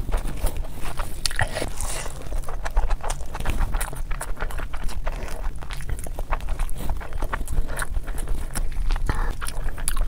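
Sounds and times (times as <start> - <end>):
wet chewing mouth clicks: 0.0 - 10.0.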